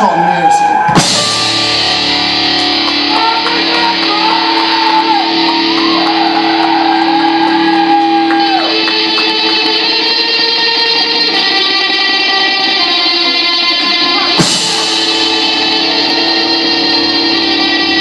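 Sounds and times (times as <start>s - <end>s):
bending electric guitar line: 0.0s - 18.0s
rock band playing live: 0.5s - 18.0s.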